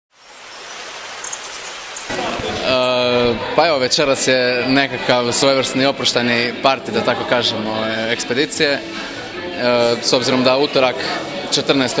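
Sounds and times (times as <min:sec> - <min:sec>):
steady hiss of noise: 0:00.2 - 0:03.4.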